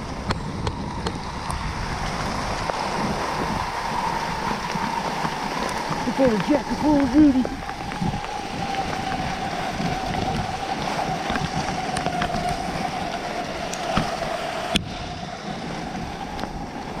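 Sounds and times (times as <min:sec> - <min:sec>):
skis gliding over snow: 0:00.0 - 0:17.0
wind buffeting microphone: 0:00.0 - 0:17.0.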